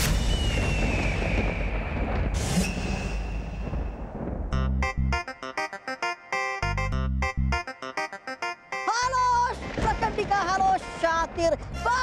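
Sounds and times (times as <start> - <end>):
whoosh: 0.0 - 4.5
deep rumble: 0.0 - 5.2.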